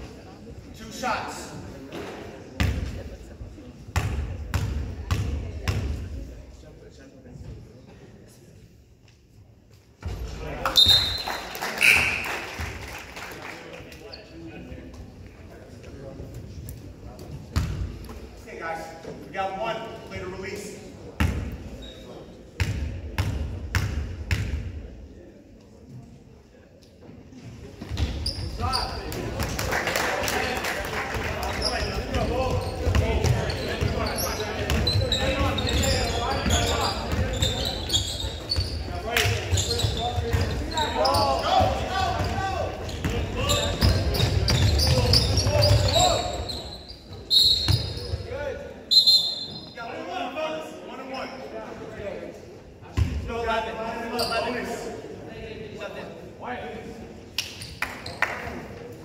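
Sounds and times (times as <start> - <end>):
shrill referee whistle: 10.7 - 12.3, 44.8 - 48.2, 48.9 - 49.8.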